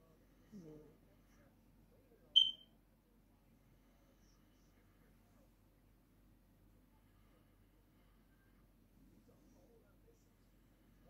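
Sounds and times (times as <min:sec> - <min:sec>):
short high-pitched electronic beep: 0:02.4 - 0:02.6.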